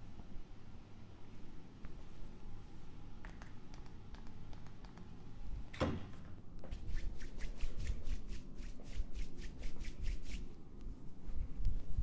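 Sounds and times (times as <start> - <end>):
palms rubbing together: 6.7 - 10.5.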